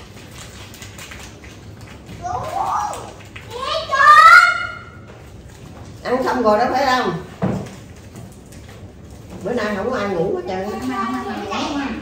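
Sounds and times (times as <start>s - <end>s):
child calling out: 2.2s - 5.0s.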